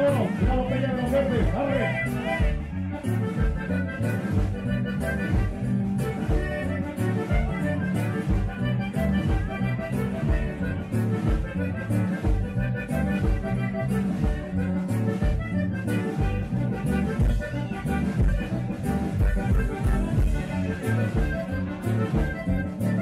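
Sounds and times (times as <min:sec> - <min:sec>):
accordion: 0:00.0 - 0:23.0
electric bass: 0:00.0 - 0:23.0
guitar: 0:00.0 - 0:23.0.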